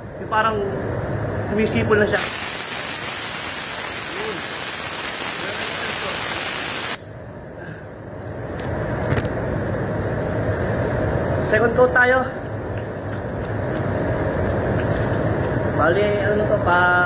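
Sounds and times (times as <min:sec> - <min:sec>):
compressed air hissing from spray gun: 0:02.2 - 0:07.2.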